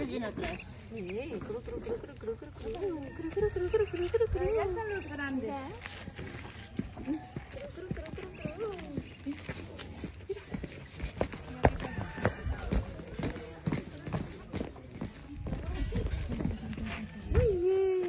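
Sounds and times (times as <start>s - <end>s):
hooves tapping on hard dirt: 0.0s - 18.0s.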